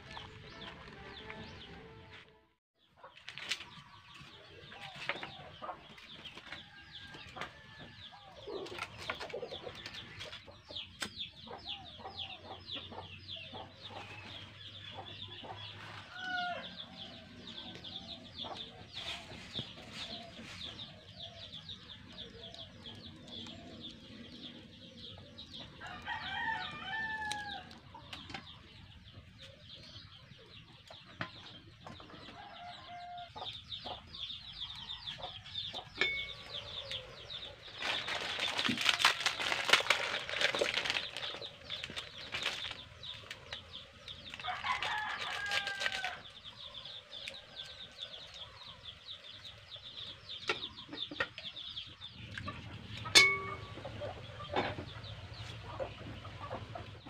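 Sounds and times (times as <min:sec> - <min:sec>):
birds chirping: 0:00.0 - 0:57.0.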